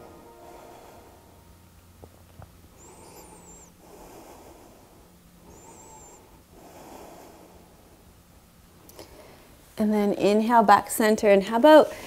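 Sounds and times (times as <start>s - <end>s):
woman breathing slowly: 2.7s - 8.2s, 8.8s - 9.7s
thin high whistle: 2.8s - 3.8s, 5.5s - 6.3s.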